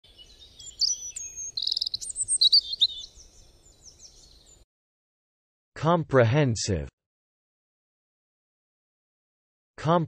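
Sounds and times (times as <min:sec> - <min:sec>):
birdsong with trills: 0:00.0 - 0:04.6.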